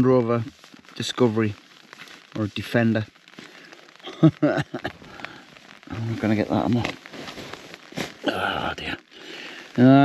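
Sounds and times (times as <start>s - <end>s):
man speaking: 0.0s - 1.6s, 2.4s - 3.1s, 5.9s - 7.0s, 8.2s - 9.1s, 9.7s - 10.0s
tent fabric crackling: 0.0s - 10.0s
man laughing: 4.0s - 5.0s.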